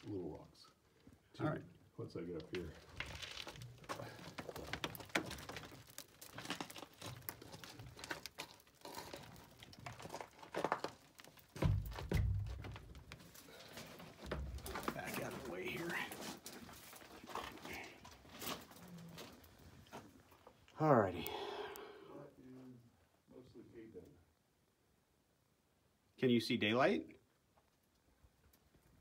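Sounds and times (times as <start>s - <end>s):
loose rocks rattling: 2.3s - 20.4s
boots scraping on rock and wood: 2.8s - 18.7s.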